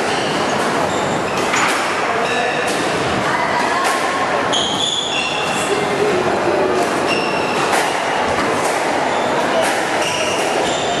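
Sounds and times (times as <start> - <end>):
loud hall din: 0.0 - 11.0.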